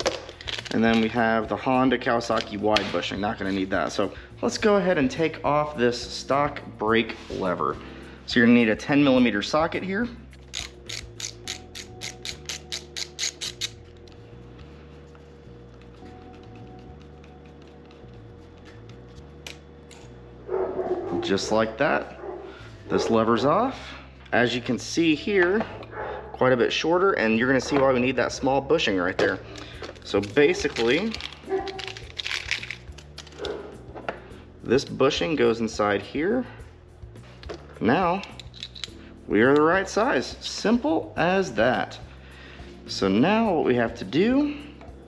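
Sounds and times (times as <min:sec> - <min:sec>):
small metal parts clicking: 0:00.0 - 0:01.1, 0:10.4 - 0:14.1, 0:29.2 - 0:33.6, 0:38.1 - 0:39.0
hand ratchet clicking: 0:10.3 - 0:14.2, 0:38.2 - 0:39.0
plastic bag crinkling: 0:29.4 - 0:33.4.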